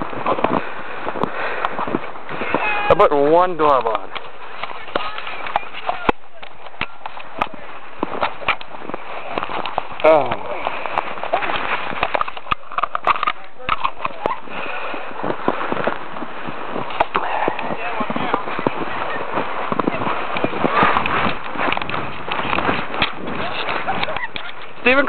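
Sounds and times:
faint voices: 0:02.3 - 0:25.0.

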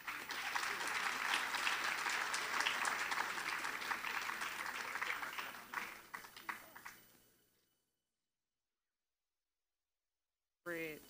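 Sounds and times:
audience applause: 0:00.0 - 0:07.0.

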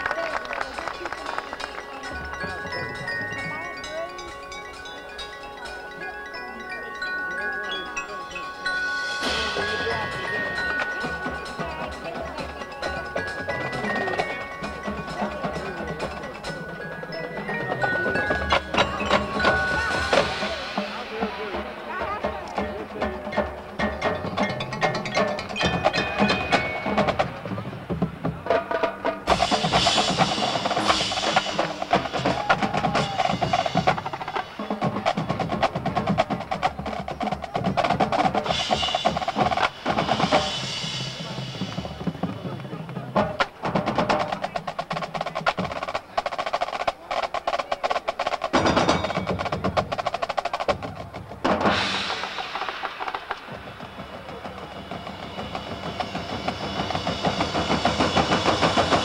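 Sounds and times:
bass drums: 0:18.0 - 0:46.0, 0:48.5 - 0:59.0
snare drum rolls: 0:25.6 - 0:59.0.

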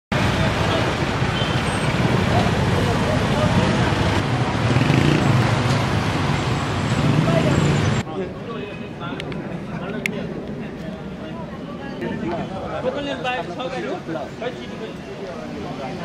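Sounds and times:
street traffic: 0:00.1 - 0:16.0.

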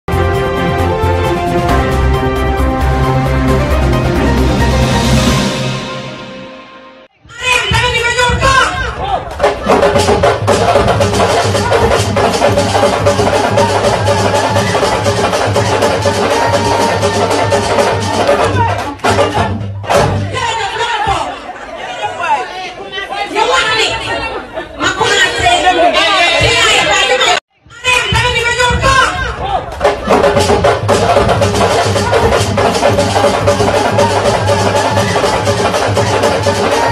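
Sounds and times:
fast dense drumming: 0:07.5 - 0:20.5, 0:28.1 - 0:36.9.

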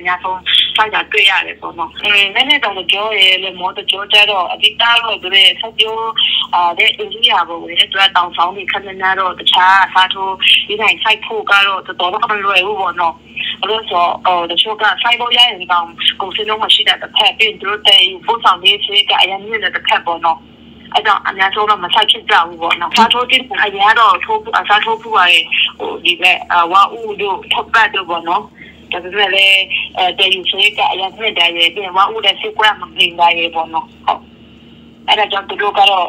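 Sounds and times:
person talking over telephone: 0:00.0 - 0:34.2, 0:35.1 - 0:36.0.

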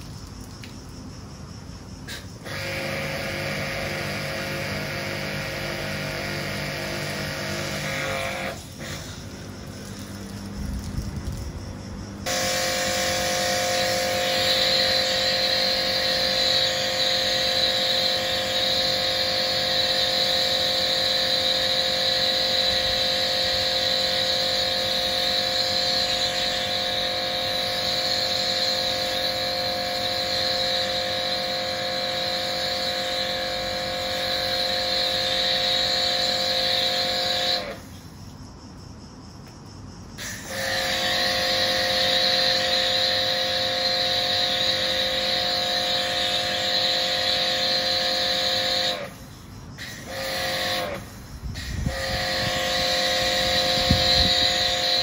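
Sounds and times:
water spraying hiss: 0:02.0 - 0:11.5, 0:12.2 - 0:38.2
pressure washer pump whining: 0:02.0 - 0:38.2, 0:40.2 - 0:55.0.

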